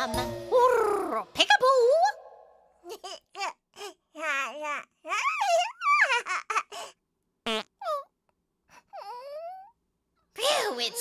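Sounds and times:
cartoon baby giggling: 0:02.8 - 0:06.9.

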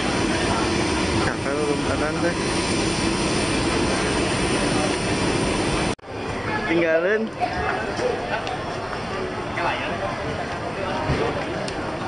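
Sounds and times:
aircraft engine roar: 0:00.0 - 0:06.0.

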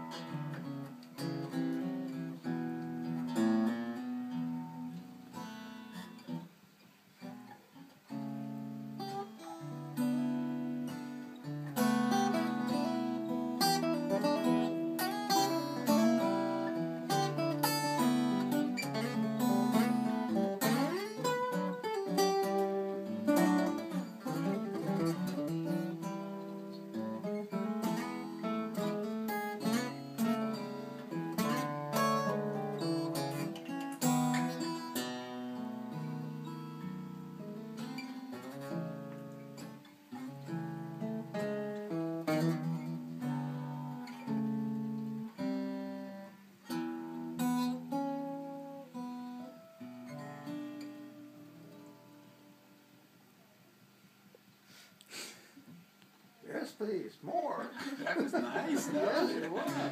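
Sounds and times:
acoustic guitars fingerpicking blues: 0:00.0 - 0:59.9.

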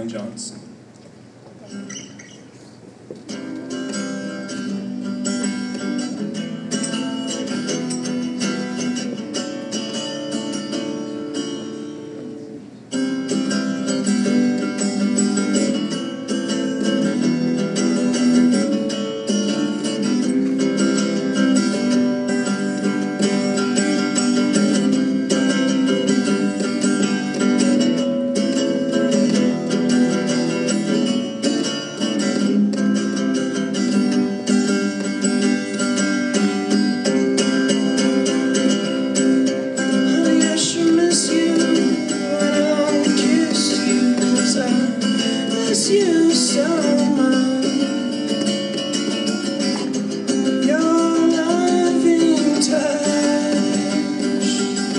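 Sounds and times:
electric guitar playing: 0:01.6 - 0:54.9.

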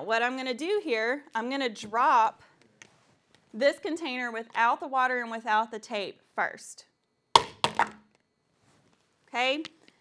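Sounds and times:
container bouncing knocks: 0:07.4 - 0:08.0.

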